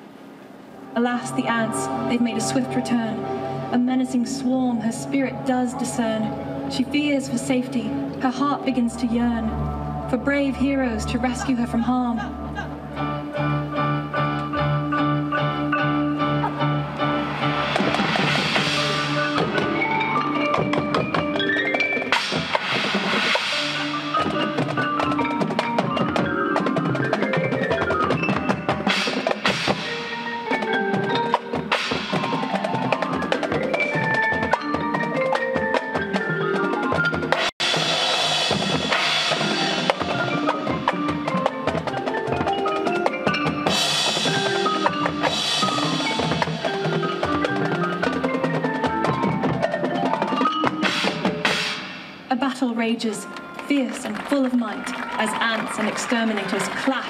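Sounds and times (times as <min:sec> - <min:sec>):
drums: 0:00.0 - 0:57.0
marching band playing: 0:00.0 - 0:57.0
marimba and xylophone: 0:00.8 - 0:57.0.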